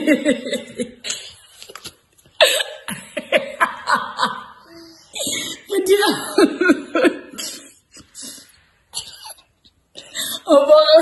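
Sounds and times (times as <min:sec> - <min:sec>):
children giggling: 0:00.0 - 0:01.5, 0:02.4 - 0:05.6.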